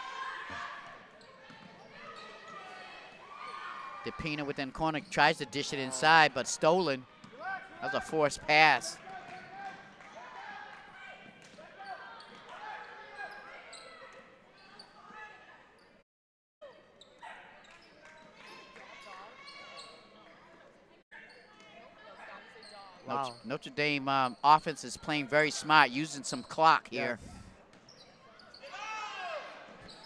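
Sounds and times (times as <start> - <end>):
voices calling out: 23.0 - 27.2.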